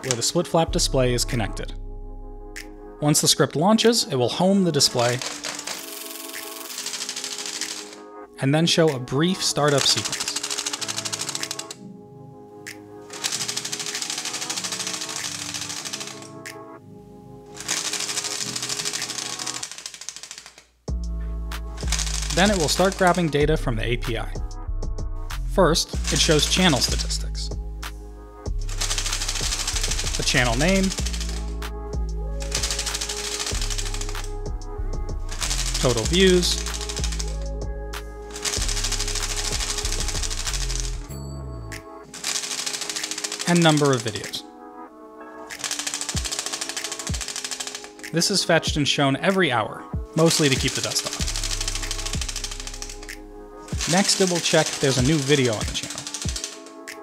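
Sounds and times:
split-flap display clattering: 4.8s - 8.0s, 35.4s - 37.5s, 53.7s - 56.7s.

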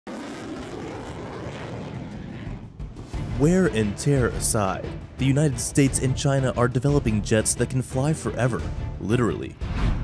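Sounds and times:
jet roar flying past: 0.1s - 4.4s.

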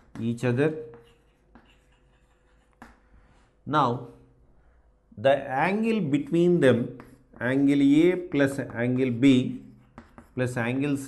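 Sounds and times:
chalk scratching on chalkboard: 0.0s - 3.6s, 6.1s - 11.0s.

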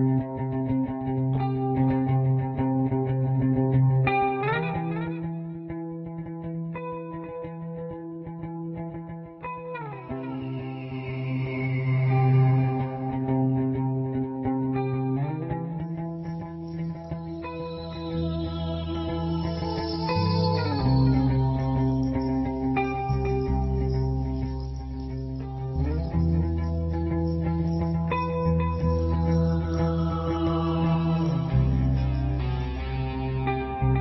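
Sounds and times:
guitar with effects playing chords: 0.0s - 34.0s.

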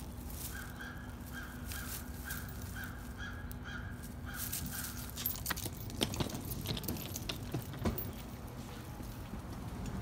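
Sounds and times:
steady low hum: 0.0s - 10.0s
bird calling: 0.4s - 5.3s
clicks and jingles: 4.4s - 8.6s.

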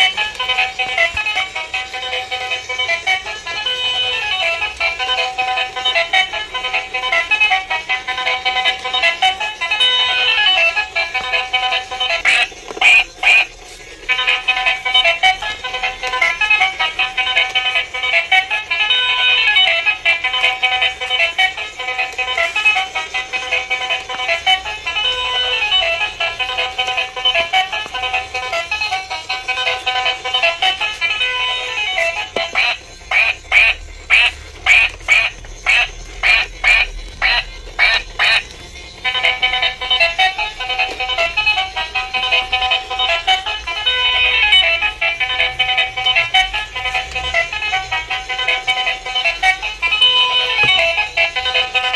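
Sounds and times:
toy electronic tune: 0.0s - 51.9s
toy quack sounds: 0.0s - 51.9s.

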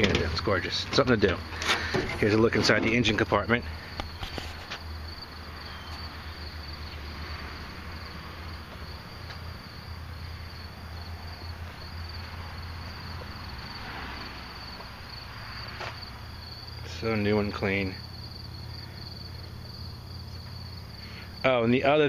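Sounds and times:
insects trilling: 0.0s - 22.0s.

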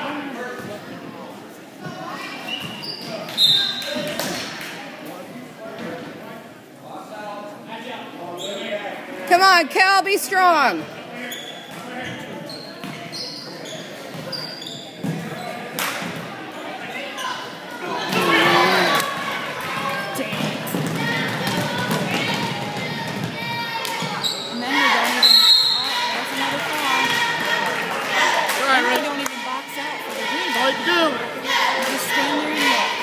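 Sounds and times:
spectators' voices and shouts: 8.9s - 11.2s, 16.0s - 33.0s.

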